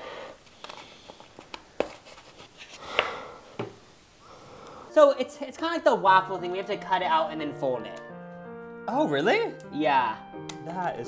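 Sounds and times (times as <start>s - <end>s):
rustling tap: 2.9s - 3.8s.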